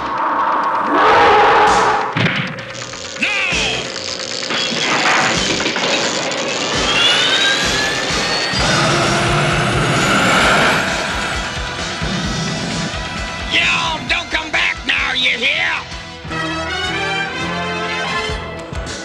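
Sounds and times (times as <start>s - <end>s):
rising whine: 0.0s - 14.4s
dramatic music: 0.0s - 19.0s.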